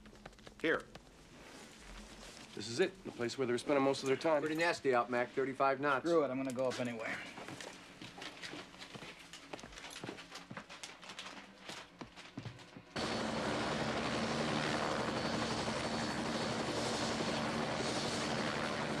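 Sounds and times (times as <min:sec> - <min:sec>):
helicopter running: 0:13.0 - 0:19.0.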